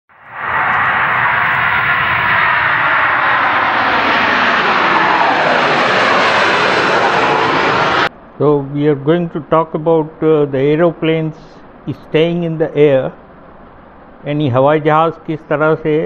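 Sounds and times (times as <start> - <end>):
jet engines roaring: 0.1 - 16.0.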